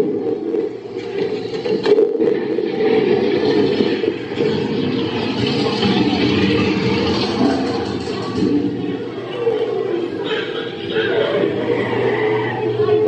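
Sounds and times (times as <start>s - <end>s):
ride car rumbling along track: 3.4s - 13.0s.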